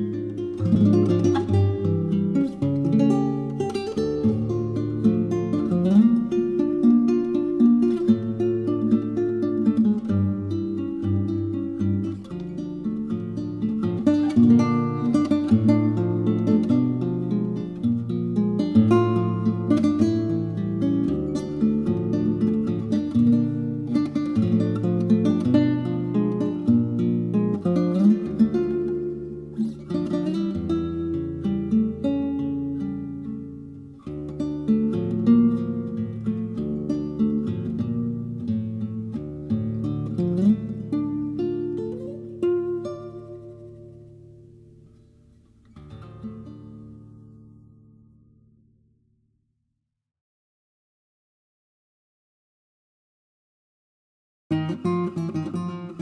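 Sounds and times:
classical guitar tango: 0.0 - 48.9, 54.5 - 56.0.

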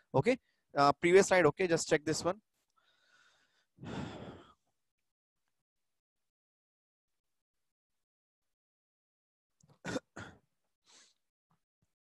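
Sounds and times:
breathy exhale: 2.8 - 4.6.

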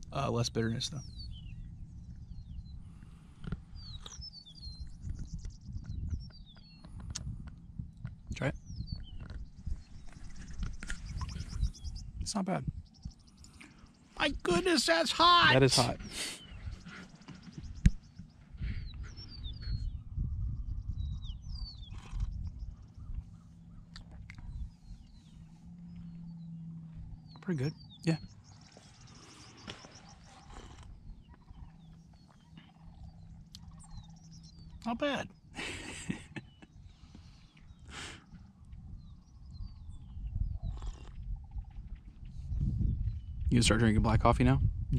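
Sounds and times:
birds chirping: 0.0 - 44.8
wind rumble on microphone: 0.0 - 44.9
low rumble: 17.5 - 34.8
low steady hum: 17.6 - 37.8.

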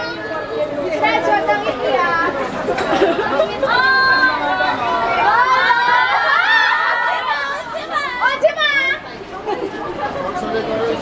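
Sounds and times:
crowd chattering excitedly: 0.0 - 11.0
people calling out: 3.2 - 9.4.

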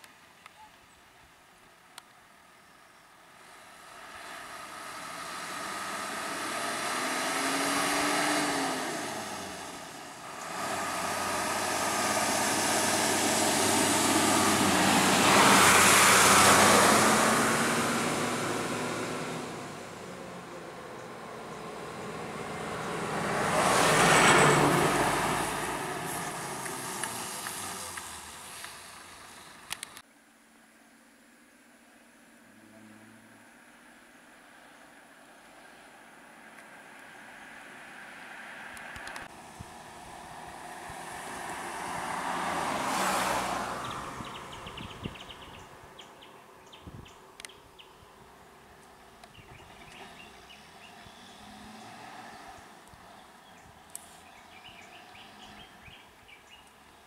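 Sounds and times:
road vehicles passing: 2.9 - 30.0, 31.3 - 57.0.

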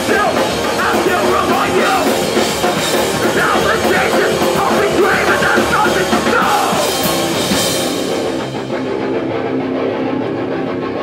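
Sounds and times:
distorted guitars droning chord: 0.0 - 11.0.

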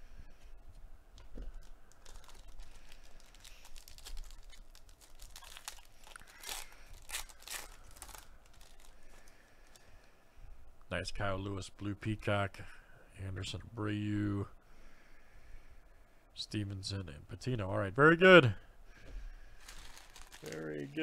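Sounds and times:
foil wrapper tearing and crinkling: 1.5 - 9.8, 19.6 - 21.0.

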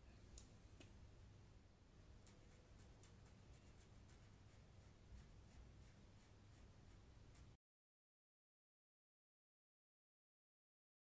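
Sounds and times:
felt-tip marker scratching: 2.3 - 7.6.

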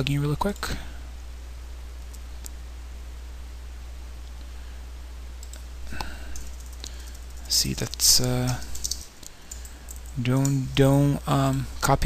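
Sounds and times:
steady low hum: 0.0 - 12.0
keyboard and mouse clicks: 5.4 - 10.7.

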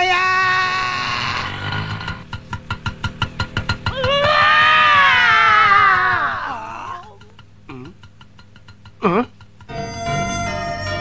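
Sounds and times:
fast percussive strikes: 2.2 - 9.9.

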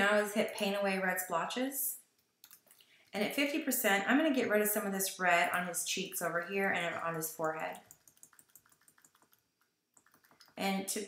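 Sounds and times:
computer keys clicking: 2.2 - 2.9, 7.4 - 10.6.

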